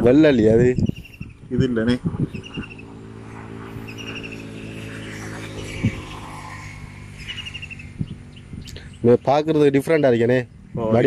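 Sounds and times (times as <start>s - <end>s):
birds chirping in trills: 0.7s - 11.0s.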